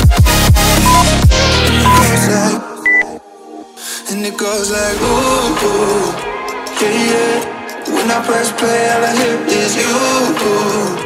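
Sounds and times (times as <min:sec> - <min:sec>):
electronic background music: 0:00.0 - 0:11.0
short high timer beep: 0:00.8 - 0:01.2, 0:01.8 - 0:02.1.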